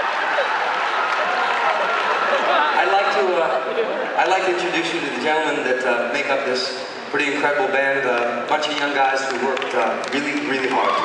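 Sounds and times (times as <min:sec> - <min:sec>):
audience applauding: 0:00.0 - 0:03.1, 0:09.3 - 0:11.0.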